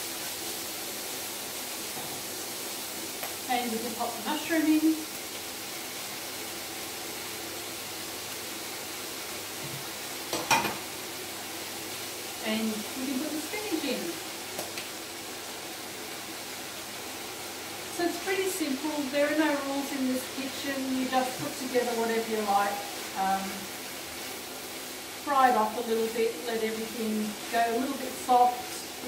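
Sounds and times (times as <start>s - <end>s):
food sizzling in a frying pan: 0.0s - 29.0s.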